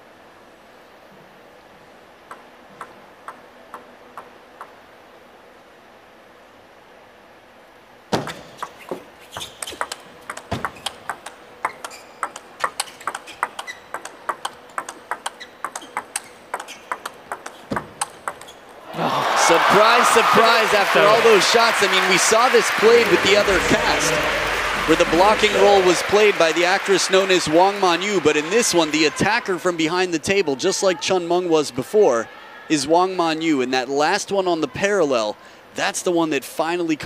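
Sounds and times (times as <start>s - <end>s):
table tennis ball bouncing: 2.3s - 4.8s, 8.2s - 18.7s
ball clicks off paddles and table: 9.6s - 18.6s
crowd cheering and shouting: 18.9s - 29.7s.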